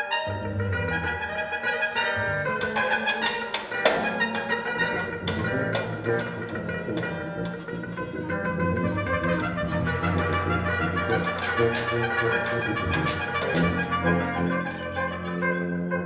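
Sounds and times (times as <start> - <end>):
bowed strings: 0.0 - 16.0
low held tuba notes: 0.0 - 16.0
sustained wind instrument tones: 0.0 - 16.0.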